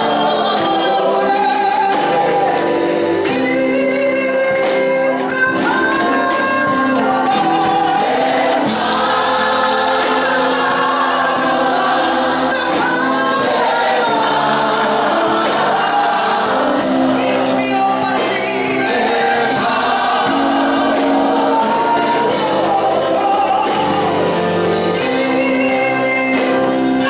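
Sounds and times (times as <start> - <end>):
choir singing: 0.0 - 27.0
woman singing gospel: 0.0 - 27.0.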